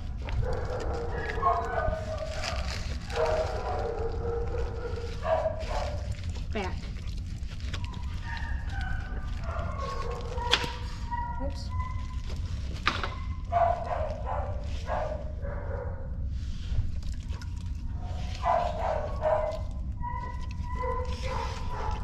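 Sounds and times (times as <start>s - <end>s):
steady low hum: 0.0s - 22.0s
dog whining and yelping: 7.6s - 15.1s, 18.1s - 22.0s.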